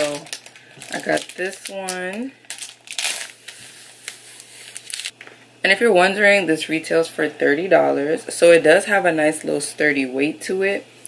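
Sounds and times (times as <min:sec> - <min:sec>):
plastic packaging film crinkling: 0:00.0 - 0:05.2.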